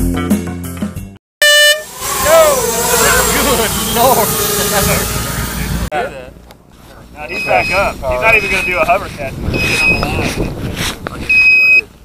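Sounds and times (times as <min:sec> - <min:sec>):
air horn blast: 0:01.4 - 0:05.9
people talking outdoors: 0:02.0 - 0:12.0.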